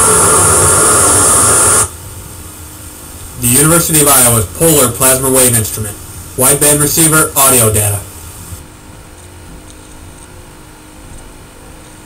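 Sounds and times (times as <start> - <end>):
low hiss: 0.0 - 8.7
faint hum tones: 0.0 - 12.0.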